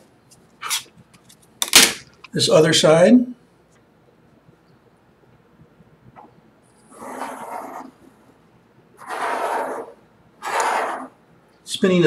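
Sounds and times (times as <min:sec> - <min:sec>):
pencil scratching on paper: 0:06.9 - 0:08.0, 0:09.0 - 0:11.2.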